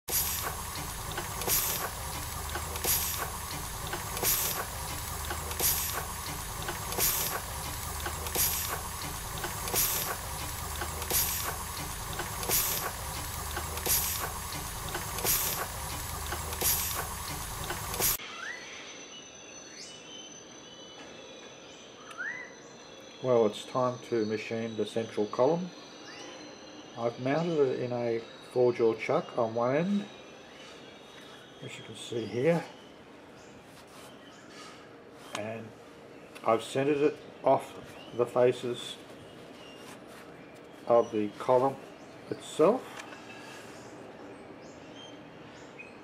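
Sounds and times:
steam engine hissing and puffing: 0:00.0 - 0:18.2.

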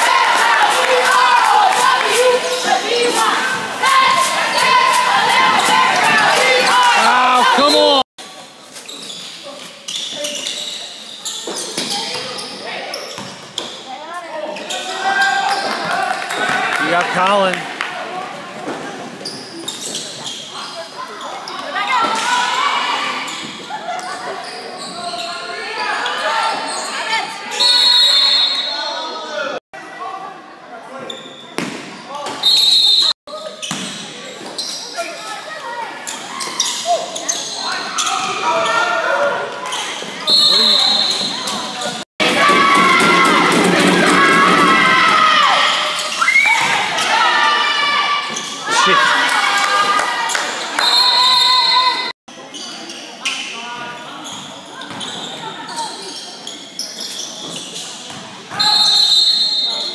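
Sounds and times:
people calling out: 0:00.0 - 0:08.1
referee whistle blasts: 0:27.5 - 0:29.0, 0:32.4 - 0:33.1, 0:58.6 - 0:59.9.

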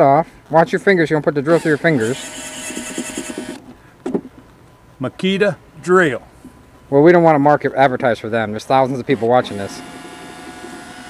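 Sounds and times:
cordless drill motor whine: 0:01.5 - 0:03.6, 0:09.1 - 0:11.0.

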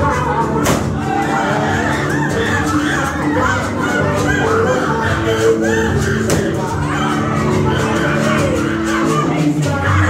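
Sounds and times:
children shouting and cheering: 0:00.0 - 0:10.0
music playing: 0:00.0 - 0:10.0.

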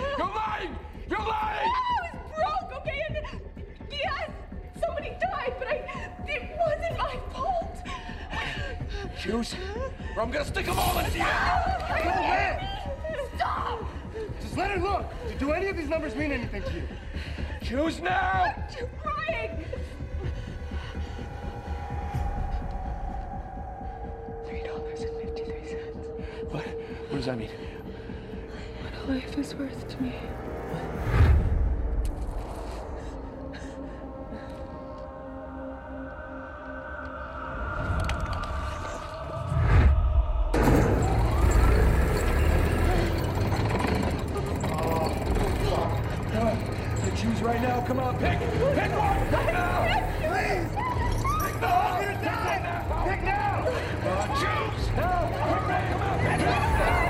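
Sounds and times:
voices shouting in panic: 0:10.3 - 0:16.4, 0:41.3 - 0:57.0
low rumbling drone: 0:18.6 - 0:57.0.

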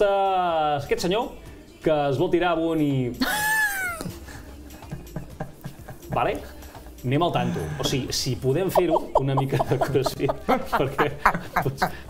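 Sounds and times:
stifled breathy laughter: 0:08.8 - 0:12.0.

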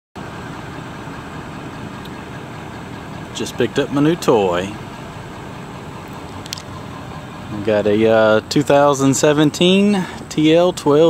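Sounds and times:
truck engine idling: 0:00.2 - 0:11.0.

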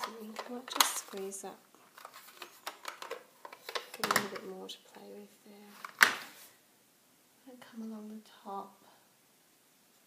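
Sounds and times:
plastic case clicking and tapping: 0:02.0 - 0:04.5.

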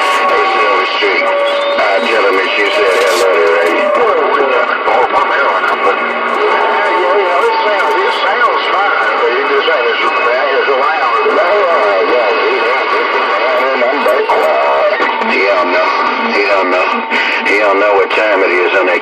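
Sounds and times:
garbled radio voices: 0:00.0 - 0:19.0
steady radio tones: 0:00.0 - 0:19.0.

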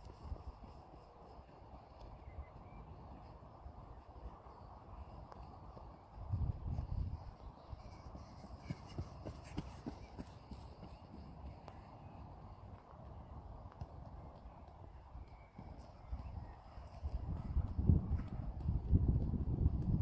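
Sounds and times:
running footsteps on grass: 0:00.0 - 0:20.0
wind rumbling on microphone: 0:00.0 - 0:20.0.

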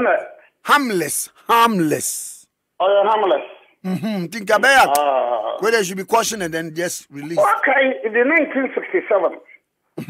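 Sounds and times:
person speaking over telephone: 0:05.5 - 0:09.6.

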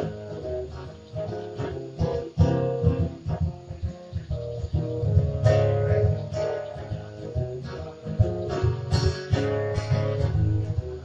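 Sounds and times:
acoustic guitars strumming: 0:00.0 - 0:11.0.

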